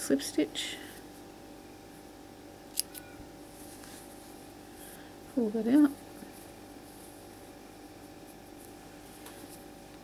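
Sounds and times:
faint steady hum: 0:00.0 - 0:10.0
scissors snipping: 0:02.7 - 0:03.1.

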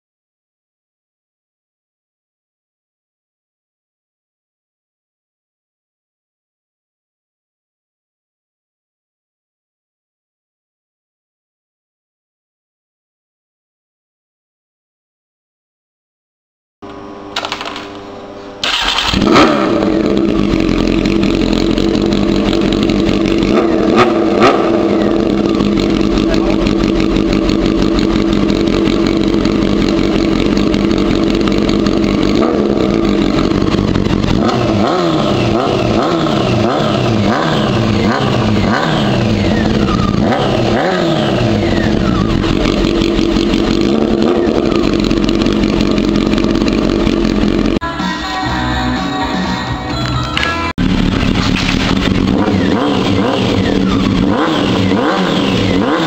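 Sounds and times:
motorcycle engine revving: 0:17.2 - 0:47.8, 0:50.8 - 0:56.0
motorcycle engine idling: 0:18.6 - 0:47.8, 0:50.8 - 0:56.0.

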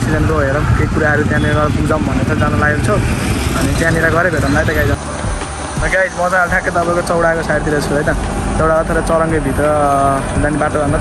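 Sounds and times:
man talking: 0:00.0 - 0:05.0, 0:05.8 - 0:11.0.

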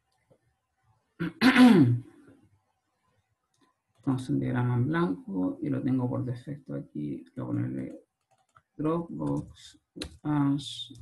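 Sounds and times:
man clearing his throat: 0:01.2 - 0:02.0.

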